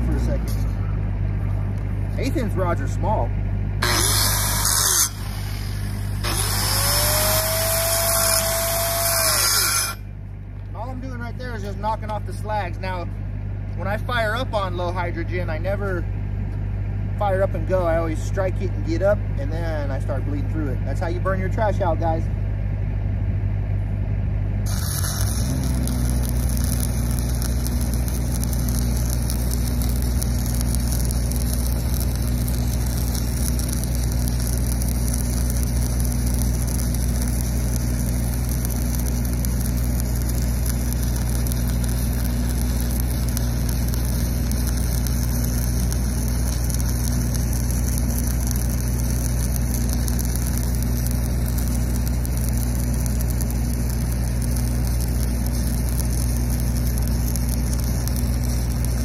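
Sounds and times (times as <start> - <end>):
welding arc crackling sizzle: 0.0 - 13.1, 13.7 - 16.0, 17.2 - 22.2, 24.6 - 59.0
engine droning: 0.0 - 59.0.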